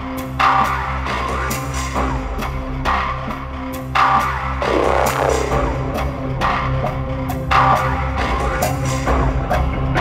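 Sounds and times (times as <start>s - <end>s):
electronic rock music: 0.0s - 10.0s
low bass notes: 0.0s - 10.0s.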